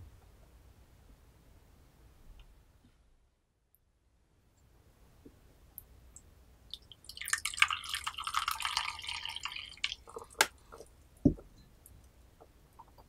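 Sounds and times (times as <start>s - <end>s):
tea pouring into a cup: 6.7s - 10.9s.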